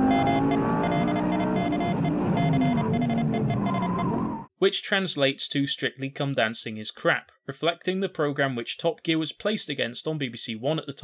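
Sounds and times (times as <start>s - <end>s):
morse code beeps: 0.0s - 4.1s
sports car engine at speed: 0.0s - 4.5s.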